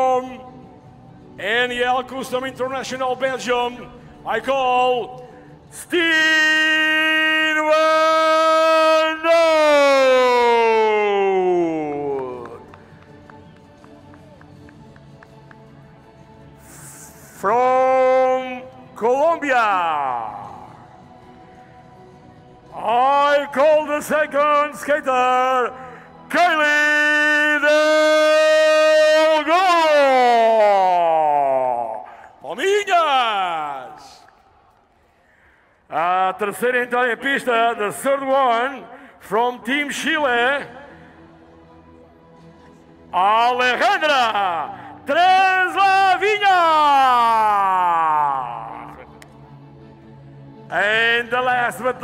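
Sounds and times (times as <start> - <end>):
announcer calling out long name: 1.4 - 5.2, 5.8 - 12.6, 16.9 - 20.8, 22.7 - 34.2, 43.2 - 49.2, 50.7 - 52.0.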